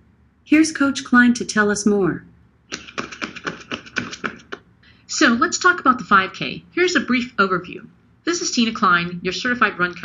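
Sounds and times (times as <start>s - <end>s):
rapid light taps: 2.7s - 4.7s.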